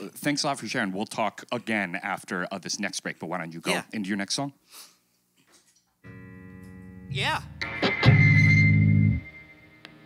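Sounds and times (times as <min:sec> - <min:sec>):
keyboard chord held: 0:06.0 - 0:07.8.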